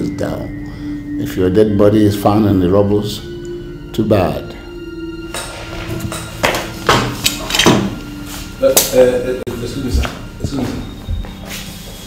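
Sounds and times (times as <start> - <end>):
steady low tone: 0.0 - 12.0.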